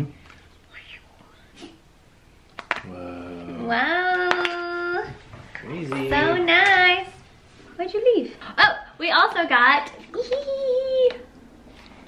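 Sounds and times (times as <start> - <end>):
wavering vocal sound: 2.8 - 5.2.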